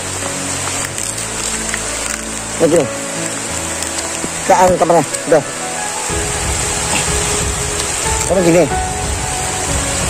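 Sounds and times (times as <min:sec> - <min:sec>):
background music low notes: 0:00.0 - 0:10.0
heavy rain falling: 0:00.0 - 0:10.0.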